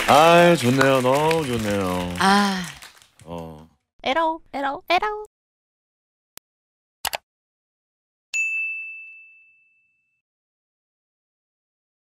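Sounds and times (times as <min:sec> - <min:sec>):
high bell ding: 0:08.4 - 0:10.2.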